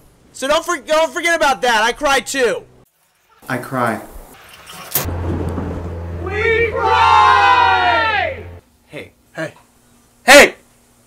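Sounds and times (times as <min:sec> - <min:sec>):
steady low hum: 0:05.1 - 0:08.9
man wailing: 0:06.2 - 0:08.6.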